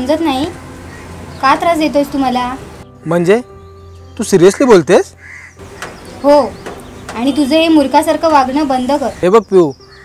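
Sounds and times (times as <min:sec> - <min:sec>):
crow cawing: 0:00.9 - 0:01.2, 0:04.4 - 0:07.4.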